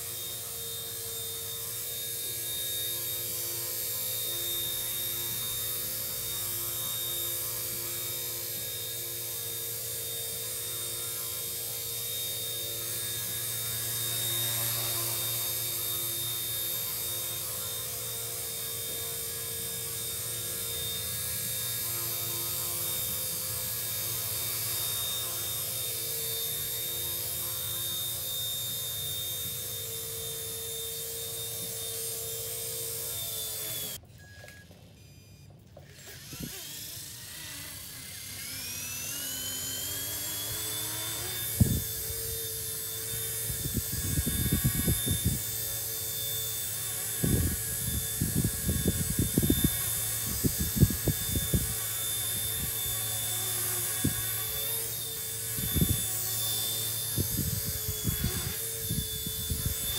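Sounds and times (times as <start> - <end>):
toy helicopter rotor whine: 0.0 - 59.9.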